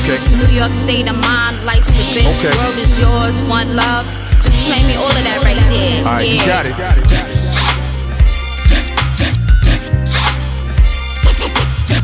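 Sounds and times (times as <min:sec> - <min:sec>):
hip-hop beat with bass: 0:00.0 - 0:12.0
turntable scratches: 0:11.2 - 0:12.0.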